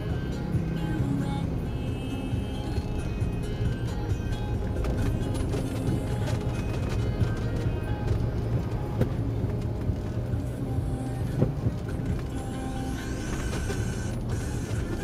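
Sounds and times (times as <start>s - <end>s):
car engine and road rumble: 0.0s - 15.0s
music playing: 0.0s - 15.0s.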